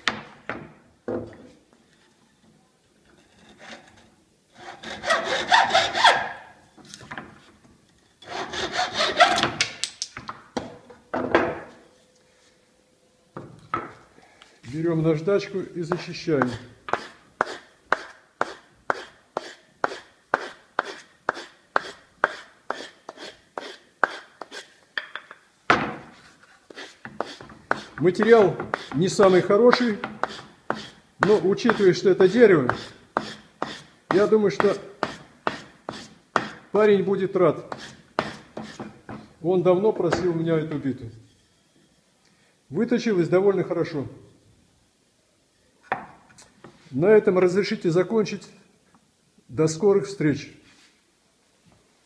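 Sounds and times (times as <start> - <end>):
sandpaper rasping on wood: 4.6 - 6.2, 8.3 - 9.4, 15.9 - 24.7, 26.7 - 36.2, 37.7 - 38.8.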